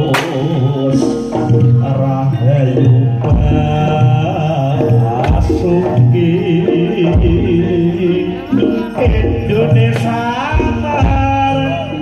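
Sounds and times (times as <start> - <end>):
gamelan music: 0.0 - 12.0.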